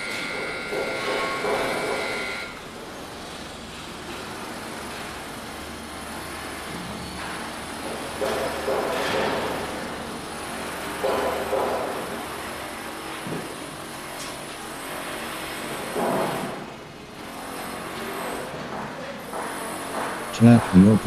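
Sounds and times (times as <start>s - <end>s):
machinery humming: 0.0s - 7.8s, 20.3s - 21.0s.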